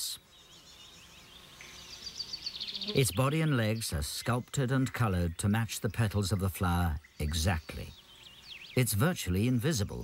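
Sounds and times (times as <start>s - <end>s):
insects chirping: 0.0s - 10.0s.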